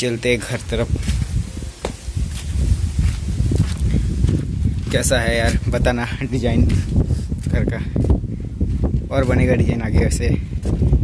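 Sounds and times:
wind buffeting microphone: 0.0 - 11.0
footsteps on dirt: 0.3 - 11.0.

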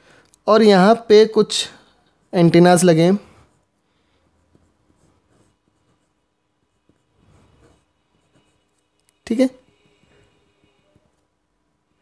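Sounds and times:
pen scratching on paper: 2.3 - 11.2.

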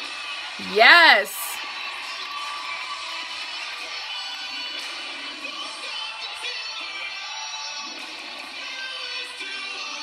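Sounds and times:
cheerleading music mix: 0.6 - 1.6
crowd cheering: 0.6 - 1.6.

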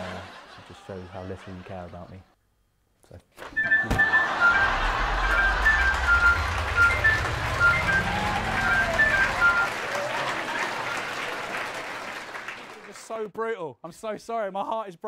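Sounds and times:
rising low tone: 4.6 - 9.7.

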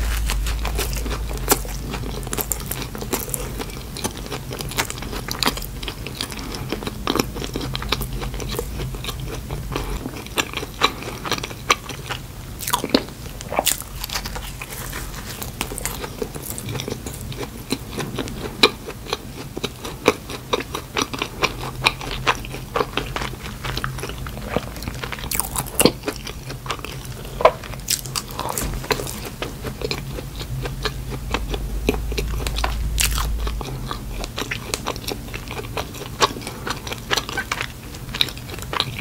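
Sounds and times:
chewing soft food: 0.0 - 39.0
faint low hum: 0.0 - 39.0.

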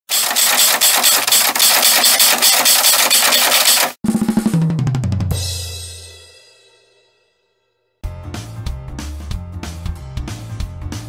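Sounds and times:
fast snare drum roll: 0.1 - 6.0.

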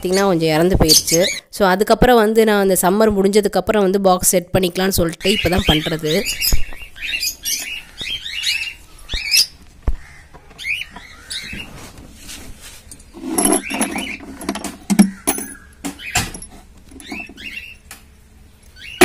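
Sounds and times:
cockatiels chirping: 5.3 - 11.8.

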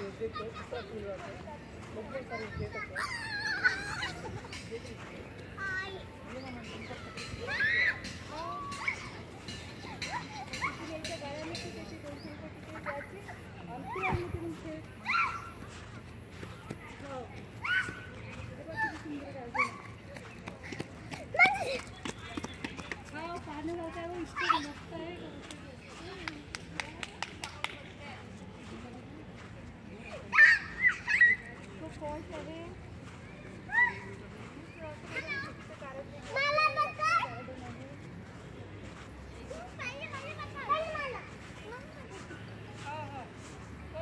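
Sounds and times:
children calling out and chattering: 0.0 - 26.6, 28.2 - 44.0
young children shouting: 7.4 - 8.9.

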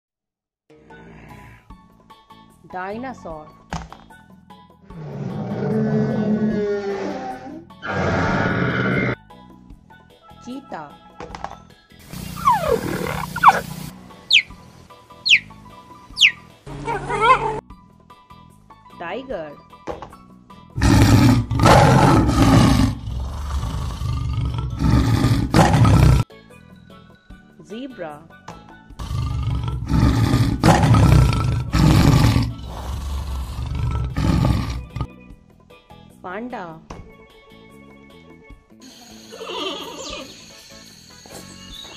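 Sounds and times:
background music: 0.7 - 41.9
big cat growling: 4.9 - 9.2, 12.1 - 13.9, 20.8 - 26.2, 29.0 - 35.1
large animal harsh calls: 4.9 - 9.2, 12.1 - 14.5, 15.2 - 15.5, 16.2 - 17.6, 20.8 - 26.2, 29.0 - 35.1
downward-sliding big cat calls: 12.2 - 14.4.

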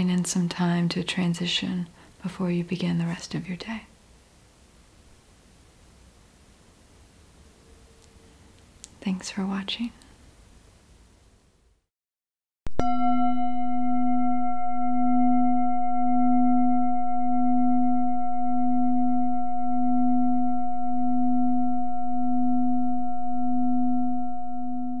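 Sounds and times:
singing bowl ringing: 12.8 - 25.0.

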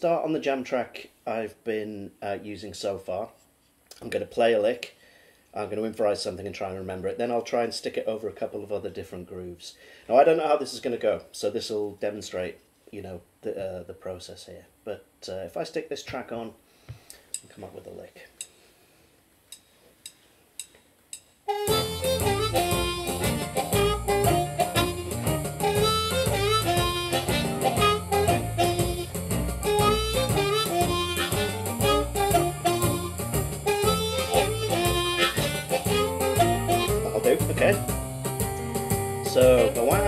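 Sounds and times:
blues backing track: 21.5 - 40.0
blues harmonica: 21.5 - 40.0.

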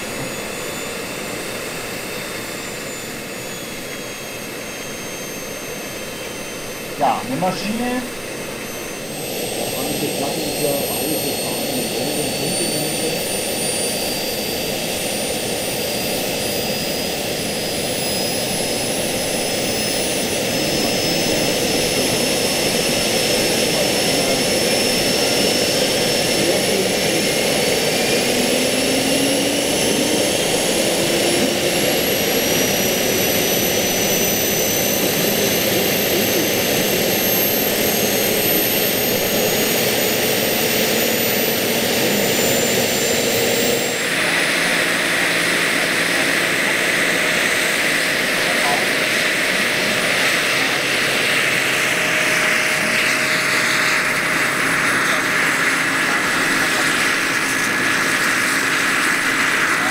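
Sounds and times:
model helicopter turbine whining: 0.0 - 59.9.

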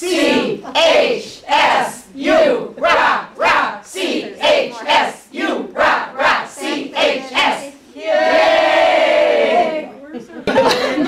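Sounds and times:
women chanting a cheer: 0.0 - 9.9.

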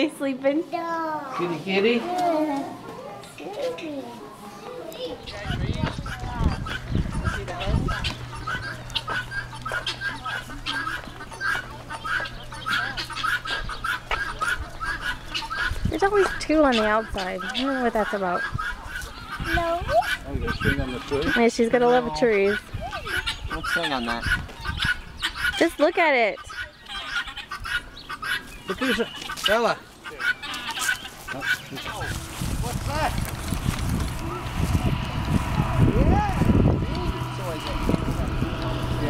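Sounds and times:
birds calling: 0.0 - 39.0.

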